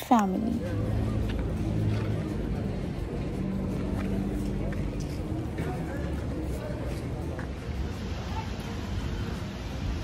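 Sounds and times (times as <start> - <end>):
faint music: 0.0 - 10.0
low rumbling city noise: 0.0 - 10.0.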